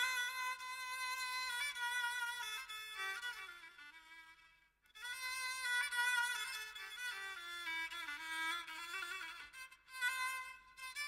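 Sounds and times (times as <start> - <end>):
bowed violin melody: 0.0 - 4.4, 5.0 - 11.0.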